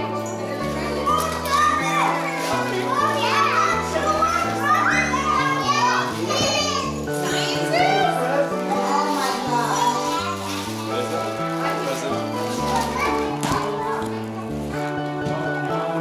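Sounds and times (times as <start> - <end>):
children chattering and calling out: 0.0 - 16.0.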